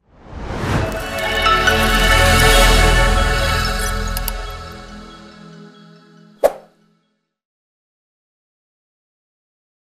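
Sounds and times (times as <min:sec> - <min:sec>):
background music: 0:00.3 - 0:07.3.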